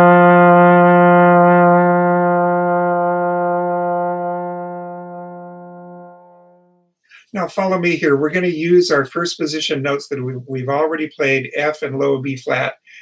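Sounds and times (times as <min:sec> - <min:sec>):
trombone long tone: 0:00.0 - 0:06.8.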